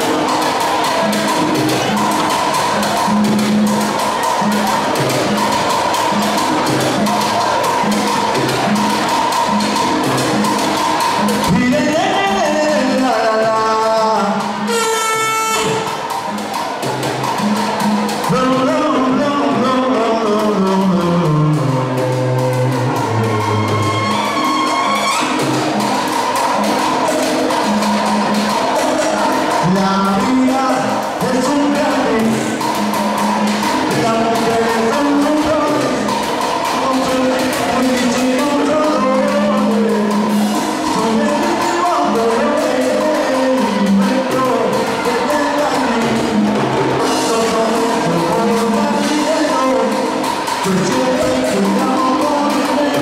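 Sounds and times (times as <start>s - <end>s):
conga and timbale percussion: 0.0s - 53.0s
live band playing dance music: 0.0s - 53.0s.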